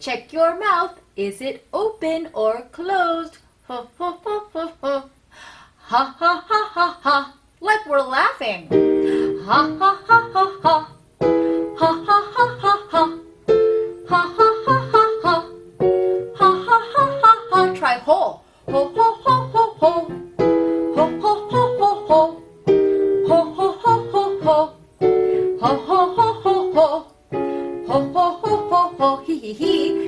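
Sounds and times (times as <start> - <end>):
woman singing staccato notes: 5.9 - 11.0, 11.6 - 24.8, 25.5 - 27.2, 27.8 - 30.0
digital piano chords: 8.7 - 17.8, 18.7 - 30.0.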